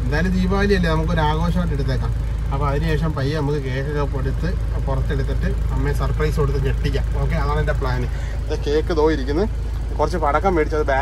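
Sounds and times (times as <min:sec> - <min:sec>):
car cabin rumble: 0:00.0 - 0:11.0
man talking: 0:00.0 - 0:11.0.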